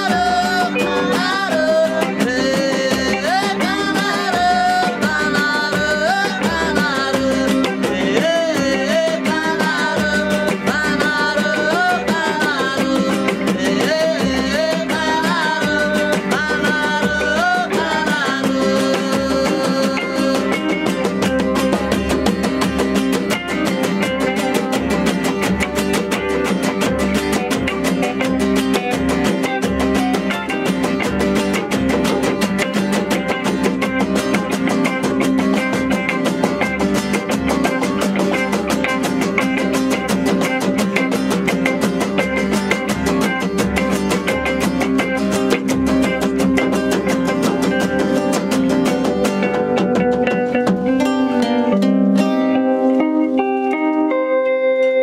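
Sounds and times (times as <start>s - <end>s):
man singing: 0.0s - 20.9s
acoustic guitars playing: 0.0s - 55.0s.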